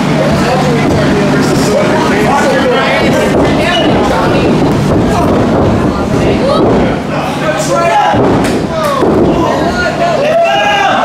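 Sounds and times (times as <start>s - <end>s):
voices shouting: 6.4s - 11.0s.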